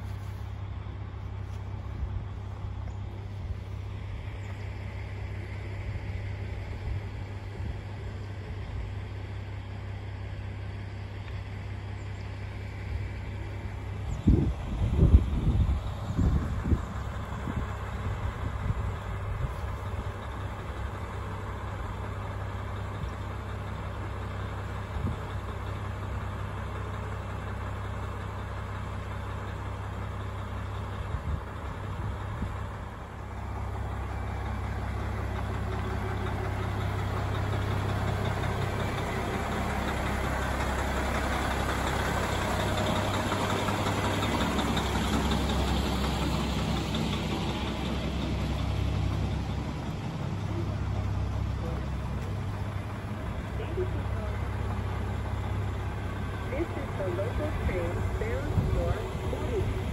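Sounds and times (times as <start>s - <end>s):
diesel train engine: 0.0s - 59.9s.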